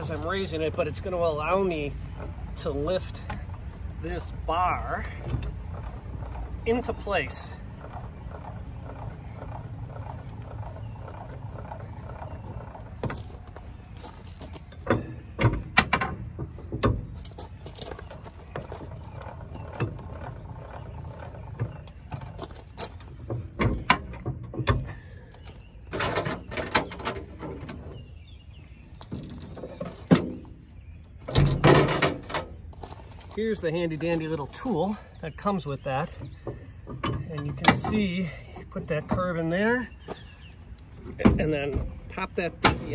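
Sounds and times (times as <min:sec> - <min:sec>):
metal clanks and chain rattles: 0:00.0 - 0:28.0, 0:31.2 - 0:35.2
jack motor running: 0:05.0 - 0:13.8.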